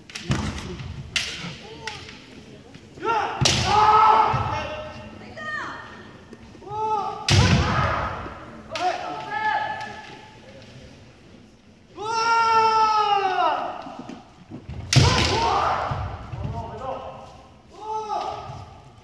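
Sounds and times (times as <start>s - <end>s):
bamboo swords clacking: 0.0s - 2.5s.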